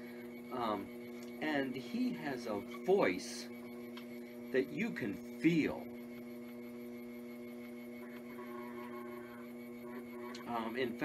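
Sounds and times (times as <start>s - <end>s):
potter's wheel motor hum: 0.0s - 11.0s.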